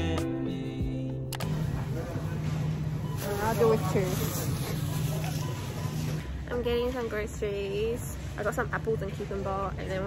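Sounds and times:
low hum of refrigeration: 0:00.7 - 0:10.0
woman speaking: 0:06.5 - 0:10.0.

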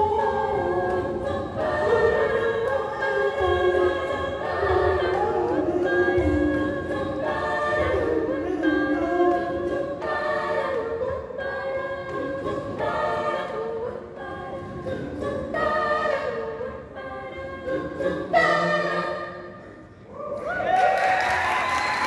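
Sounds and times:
group singing a cappella: 0:00.0 - 0:20.1.

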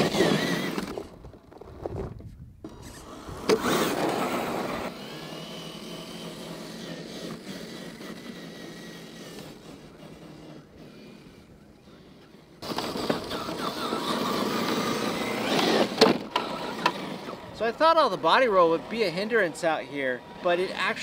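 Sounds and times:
electric motor and gears whining: 0:00.0 - 0:21.0.

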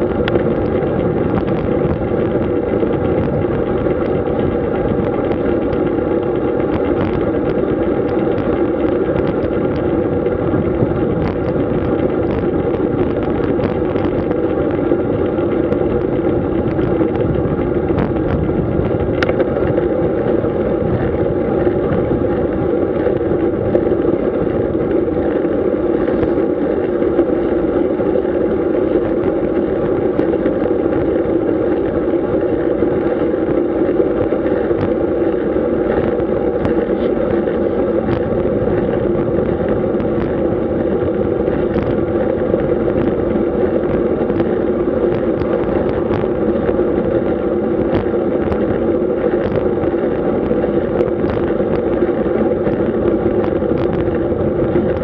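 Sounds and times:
bicycle tyres rolling on asphalt: 0:00.0 - 0:55.0
wind noise on microphone: 0:00.0 - 0:55.0.

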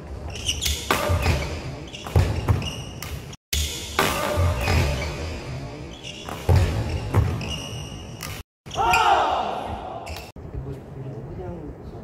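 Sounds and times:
badminton rackets hitting shuttlecock: 0:00.3 - 0:05.4, 0:06.2 - 0:09.1.

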